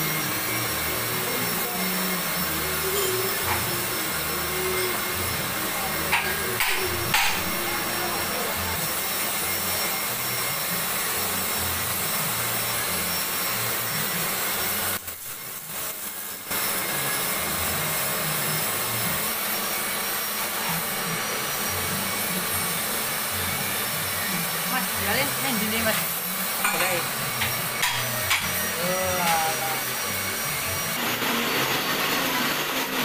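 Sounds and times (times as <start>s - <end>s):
whooshing machine noise: 0.0s - 33.0s.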